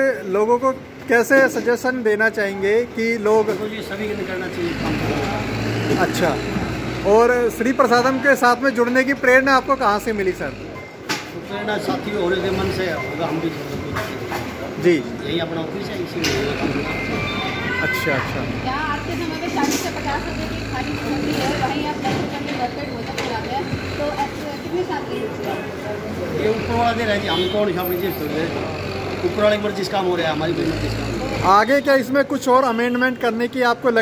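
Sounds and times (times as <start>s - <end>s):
vehicle engine rumbling: 3.4s - 17.3s.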